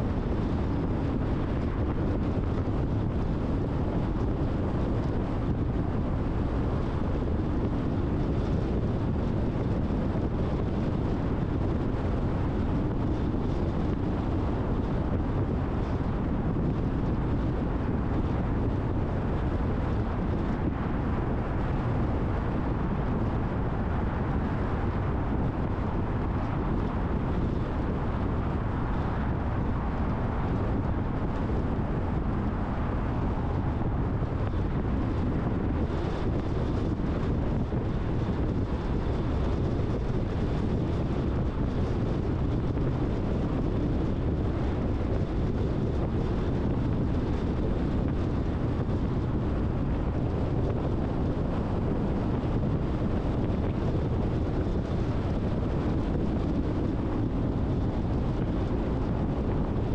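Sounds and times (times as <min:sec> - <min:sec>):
wind noise: 0:00.0 - 0:59.9.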